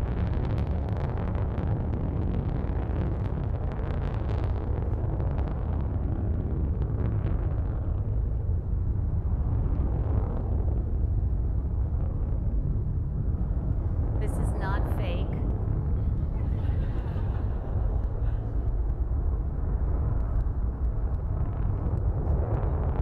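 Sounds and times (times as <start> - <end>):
rocket engine rumble over loudspeakers: 0.0 - 23.0.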